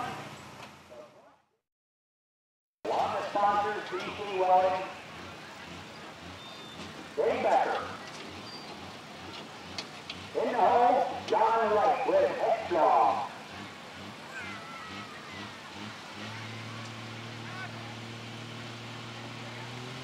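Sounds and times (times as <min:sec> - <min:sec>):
announcer talking: 0:02.9 - 0:05.3, 0:07.2 - 0:08.0, 0:10.3 - 0:13.4
tractor engine idling: 0:02.9 - 0:19.8.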